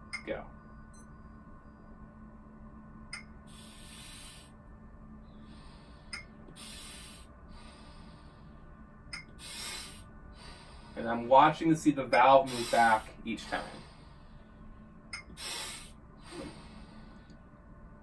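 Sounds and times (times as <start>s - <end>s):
hissing breath drawn in: 3.5s - 4.6s, 5.4s - 8.6s, 9.4s - 11.1s, 12.5s - 14.5s, 15.3s - 17.4s.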